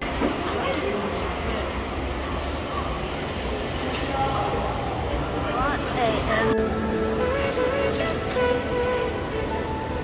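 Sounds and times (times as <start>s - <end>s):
faint voices: 0.1s - 10.0s.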